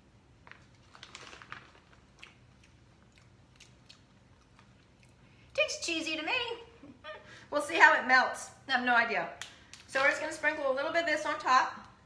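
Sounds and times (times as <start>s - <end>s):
person chewing: 2.0s - 5.5s.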